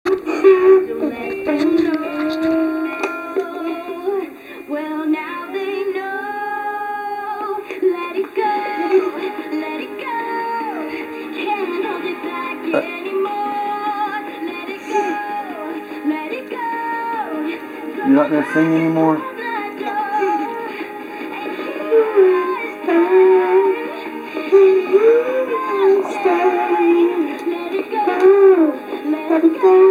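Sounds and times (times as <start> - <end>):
pop song through toy speaker: 0.1 - 29.9.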